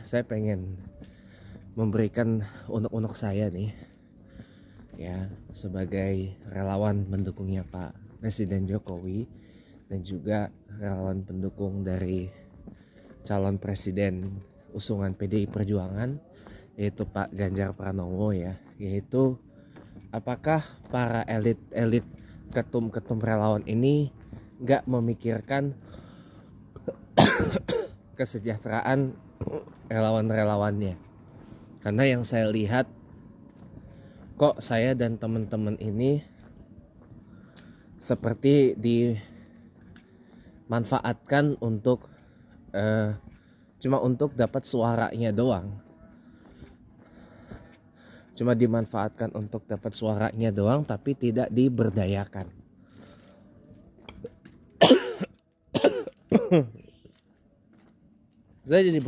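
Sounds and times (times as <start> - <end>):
man coughing: 26.8 - 28.0, 54.2 - 56.9.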